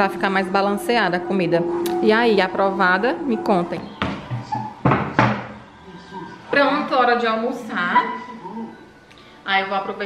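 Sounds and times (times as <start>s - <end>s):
sharp knocks: 4.0s - 5.6s.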